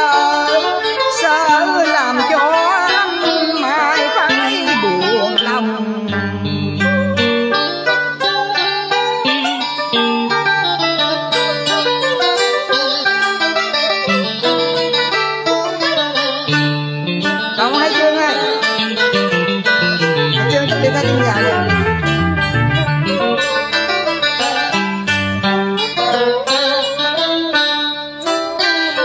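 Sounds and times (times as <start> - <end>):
plucked guitar melody: 0.0 - 29.0
stepping bass line: 17.1 - 23.8.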